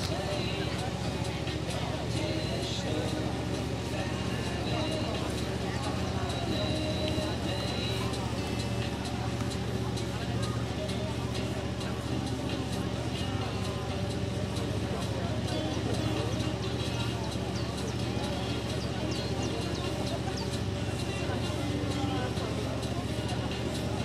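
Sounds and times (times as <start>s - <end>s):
distant murmur of voices: 0.0s - 24.0s.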